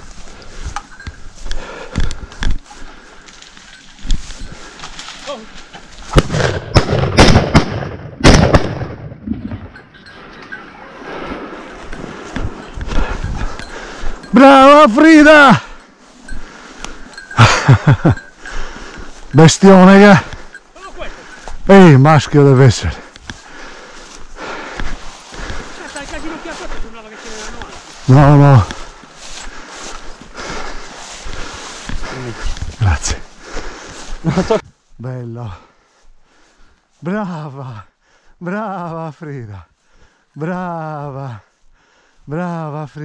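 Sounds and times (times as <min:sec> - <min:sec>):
footsteps through dry grass: 0:00.0 - 0:07.1, 0:09.5 - 0:43.0
rustling and movement: 0:00.0 - 0:37.2
shotgun shots: 0:06.1 - 0:09.2.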